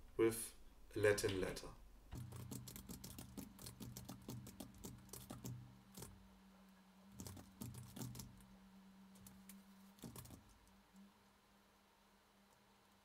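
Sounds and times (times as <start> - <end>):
typing on computer keyboard: 2.2 - 6.2, 7.2 - 8.4, 10.0 - 10.4.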